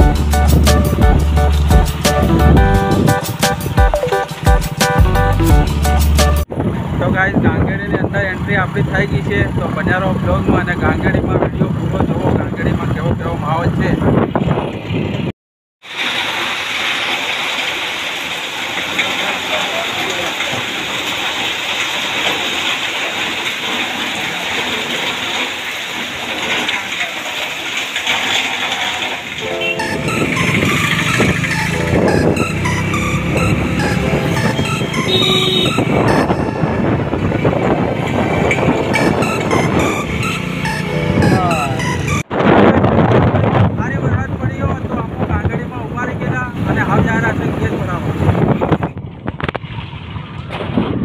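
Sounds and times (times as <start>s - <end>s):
background music with a beat: 0.0s - 6.4s, 29.4s - 36.7s
heavy rain pouring: 0.0s - 7.9s, 15.8s - 50.4s.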